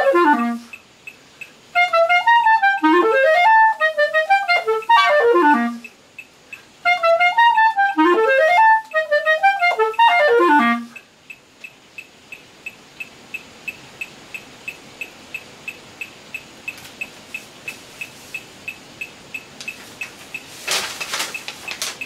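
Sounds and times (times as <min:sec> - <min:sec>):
clarinet playing: 0:00.0 - 0:00.7, 0:01.7 - 0:05.9, 0:06.8 - 0:11.0
metronome ticking: 0:00.0 - 0:20.6.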